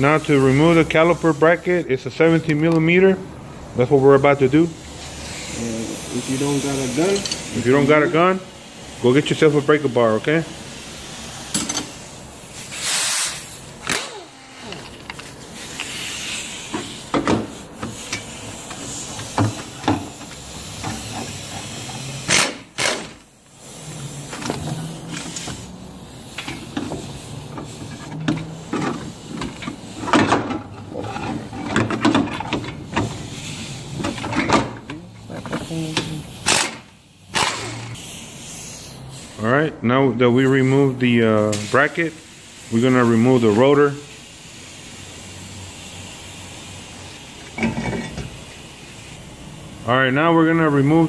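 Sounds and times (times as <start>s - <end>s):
air impact wrench bursts: 0.0s - 31.6s, 32.5s - 51.0s.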